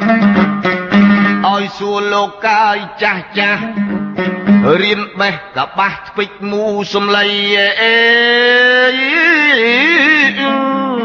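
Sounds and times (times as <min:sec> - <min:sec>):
man singing a long note: 0:04.6 - 0:11.0.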